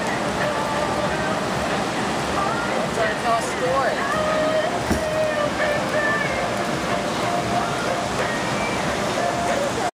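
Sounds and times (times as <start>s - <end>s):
steady rushing noise: 0.0s - 9.9s.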